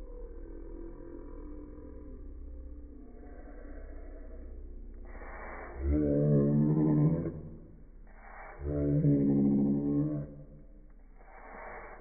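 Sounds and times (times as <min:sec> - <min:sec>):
slowed-down deep human voice: 0:00.0 - 0:12.0.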